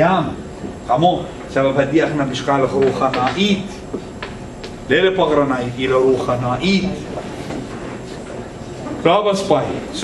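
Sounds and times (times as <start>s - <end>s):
room noise hiss and rumble: 0.0s - 10.0s.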